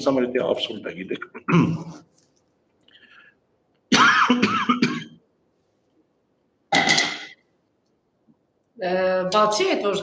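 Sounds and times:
man coughing: 1.2 - 2.0, 3.9 - 5.2.

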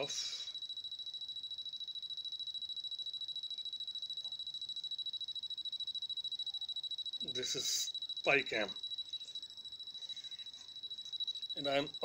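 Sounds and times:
pulsing high-pitched whine: 0.0 - 12.0.

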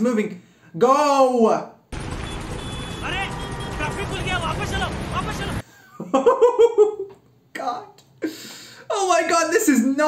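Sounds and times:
city traffic rumble: 2.0 - 5.6
man shouting: 3.0 - 5.6.

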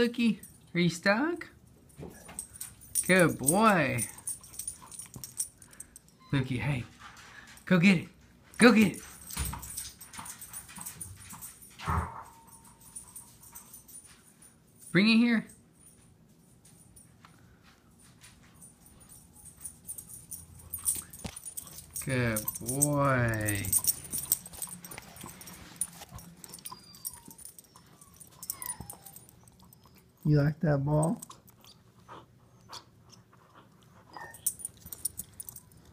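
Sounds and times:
paws tapping on floor: 16.7 - 30.2
puppy whimpering: 22.2 - 30.4, 34.1 - 34.6.

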